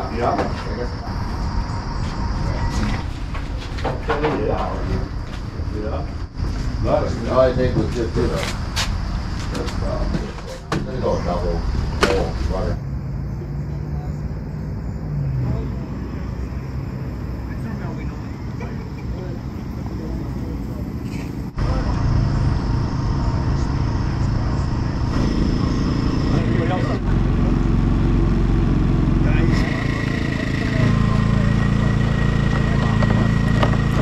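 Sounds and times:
indistinct voices: 0:00.0 - 0:34.0
low engine hum: 0:00.0 - 0:34.0.

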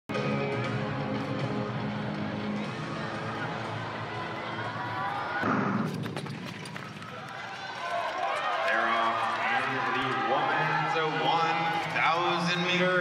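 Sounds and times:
crowd din: 0:00.2 - 0:13.0.

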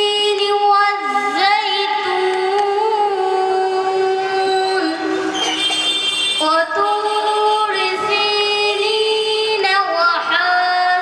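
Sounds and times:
boy reciting melodically into microphone: 0:00.0 - 0:05.4, 0:06.4 - 0:11.0.

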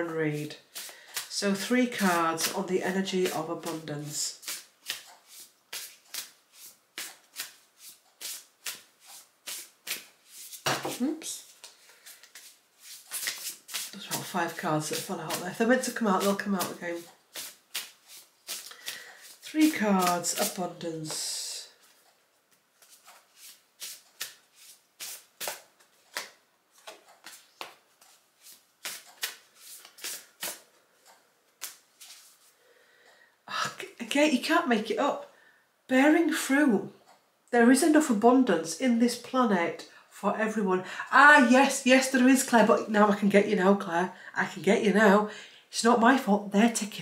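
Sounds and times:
cards being shuffled: 0:04.4 - 0:20.6, 0:22.8 - 0:30.7, 0:31.5 - 0:32.5.

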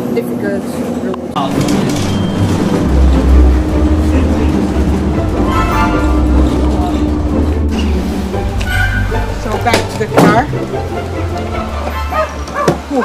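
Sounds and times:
bus engine and road noise: 0:00.0 - 0:13.0
background music: 0:01.4 - 0:13.0.

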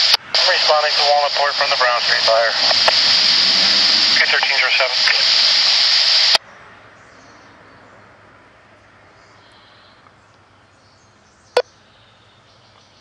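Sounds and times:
distant birds chirping: 0:08.7 - 0:13.0.

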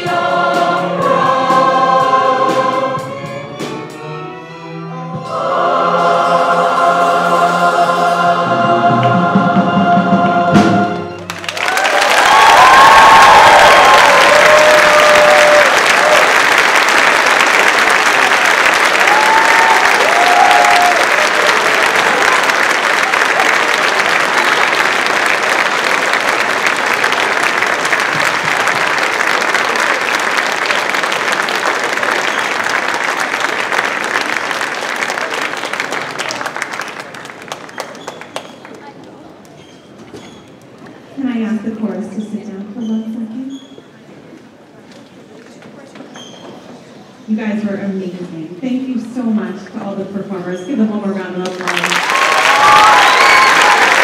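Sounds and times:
choir and strings holding chord: 0:00.0 - 0:11.3
people cheering: 0:11.2 - 0:38.9, 0:51.6 - 0:54.0
audience applauding: 0:11.2 - 0:39.6, 0:51.4 - 0:54.0.

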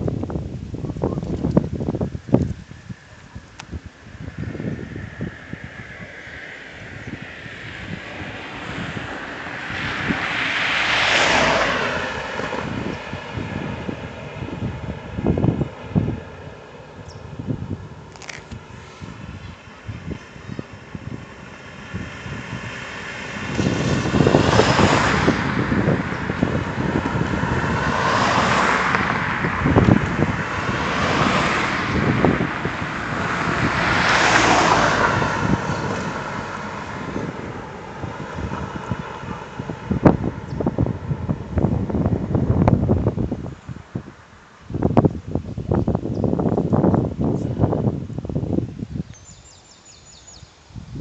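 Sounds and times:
cars passing on asphalt: 0:00.0 - 0:51.0
wind buffeting microphone: 0:00.0 - 0:51.0.

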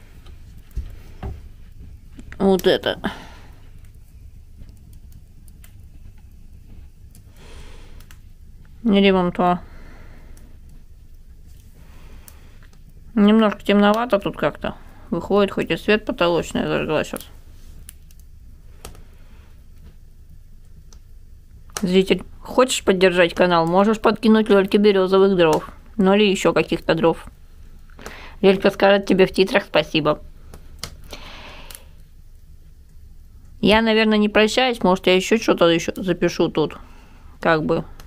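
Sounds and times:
fire popping: 0:00.0 - 0:34.5
wood fire burning: 0:00.0 - 0:38.0.

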